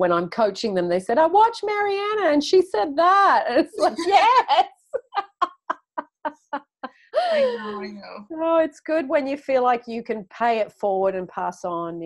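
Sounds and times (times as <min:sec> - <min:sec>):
woman laughing: 0:03.6 - 0:08.0.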